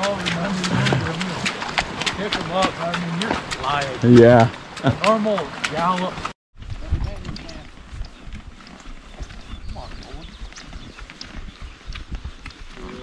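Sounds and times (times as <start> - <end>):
horse hooves on muddy trail: 0.0 - 13.0.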